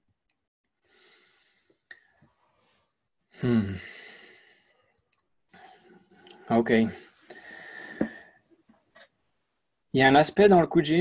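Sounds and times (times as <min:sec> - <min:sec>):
man humming hmm: 0:03.4 - 0:03.9.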